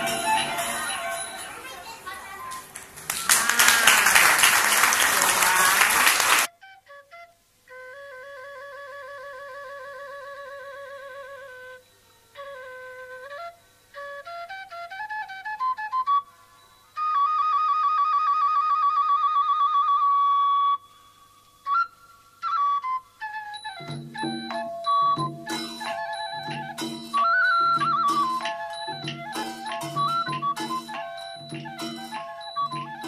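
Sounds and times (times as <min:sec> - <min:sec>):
solo flute melody: 0:00.0 - 0:01.7, 0:06.5 - 0:33.0
applause: 0:02.7 - 0:06.5.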